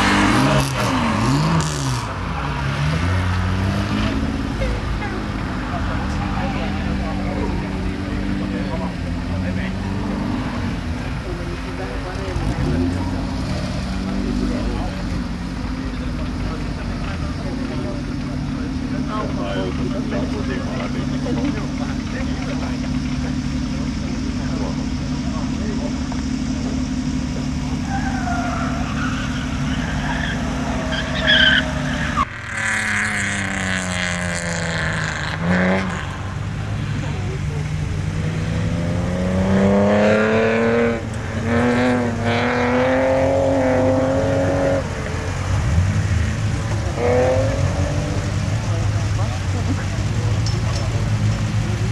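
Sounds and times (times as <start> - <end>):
racing car engine: 0.0 - 51.9
tyre squeal: 27.6 - 33.5.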